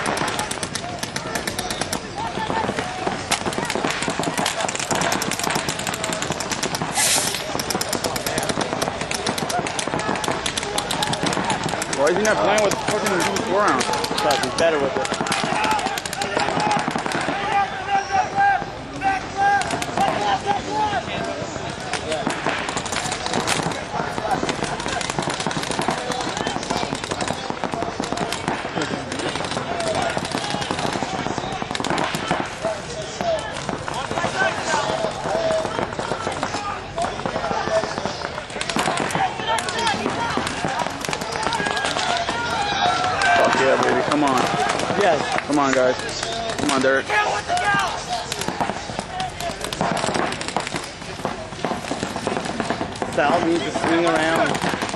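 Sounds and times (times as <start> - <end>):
paintball markers firing: 0.0 - 17.6, 19.4 - 20.5, 21.1 - 54.9
people shouting: 0.0 - 54.9.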